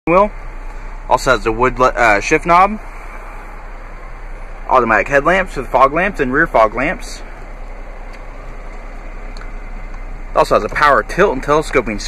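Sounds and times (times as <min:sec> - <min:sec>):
low hum: 0:00.1 - 0:12.0.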